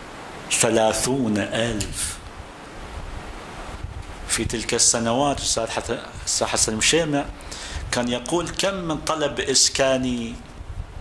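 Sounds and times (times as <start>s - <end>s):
steady background hiss: 0.0s - 11.0s
man speaking: 0.5s - 2.2s, 4.3s - 10.5s.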